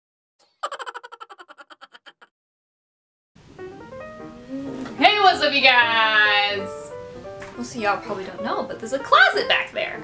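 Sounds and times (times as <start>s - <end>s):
cartoon rattle effect: 0.5s - 2.3s.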